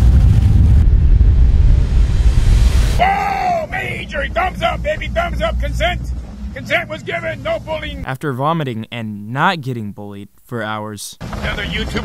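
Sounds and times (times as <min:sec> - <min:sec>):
boat engine low rumble: 0:03.6 - 0:08.0.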